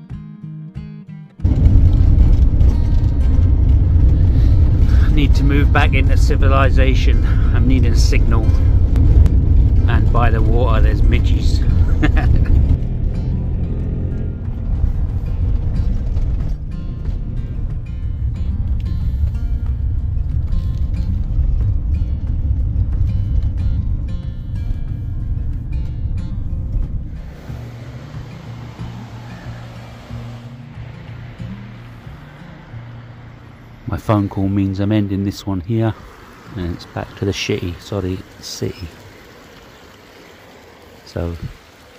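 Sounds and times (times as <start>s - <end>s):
background music: 0.0s - 38.2s
van engine and road rumble: 1.4s - 41.9s
light steady hiss: 16.4s - 41.9s.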